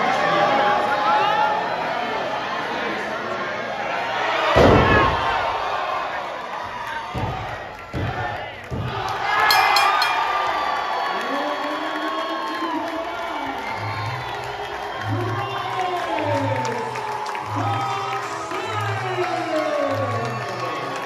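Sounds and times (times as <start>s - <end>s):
crowd cheering in a hall: 0.0s - 21.0s.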